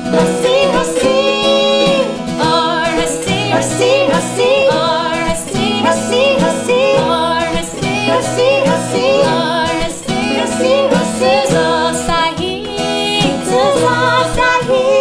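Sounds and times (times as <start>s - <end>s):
strummed acoustic guitar: 0.0s - 15.0s
women singing in harmony: 0.0s - 15.0s.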